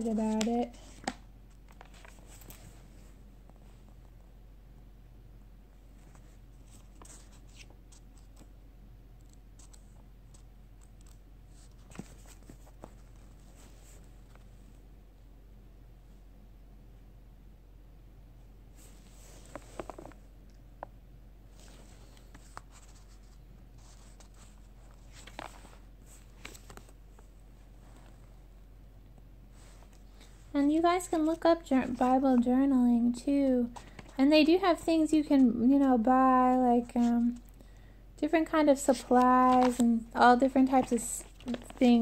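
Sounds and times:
room hum: 0.0 - 42.0
thin pages rustling: 0.1 - 3.6, 5.9 - 8.5, 9.6 - 14.5, 18.8 - 20.2, 21.5 - 28.3, 33.7 - 34.8, 38.9 - 42.0.

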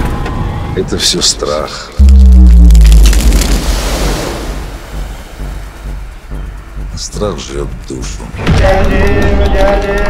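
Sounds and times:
deep cinematic boom: 2.0 - 3.8.

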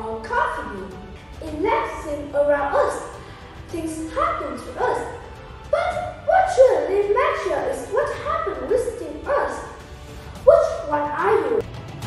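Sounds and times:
girl speaking: 0.0 - 9.7, 10.5 - 11.6.

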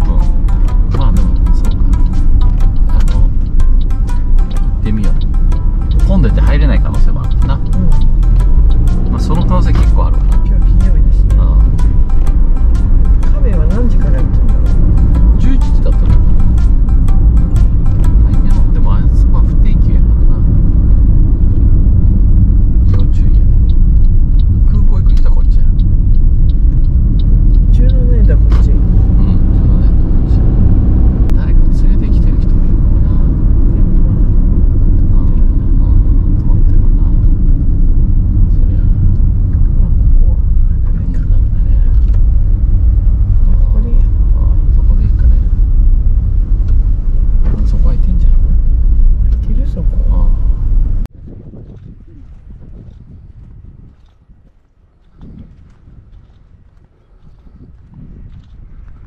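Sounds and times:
car cabin road and engine rumble: 0.0 - 59.0.

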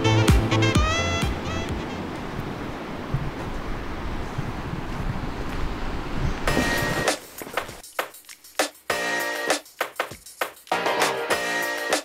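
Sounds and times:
music: 0.0 - 2.0, 6.5 - 12.0
ocean surf washing on beach: 1.0 - 7.8.

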